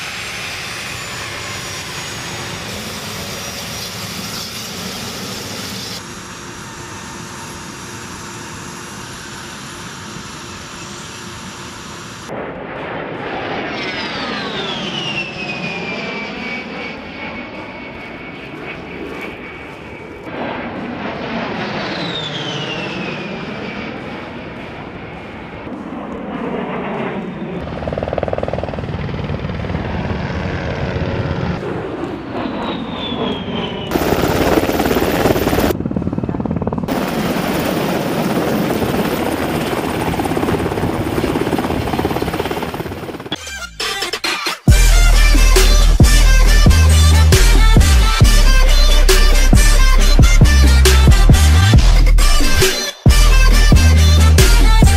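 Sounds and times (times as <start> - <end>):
jet passing with high whine: 0.0 - 43.4
helicopter rotors: 0.0 - 54.9.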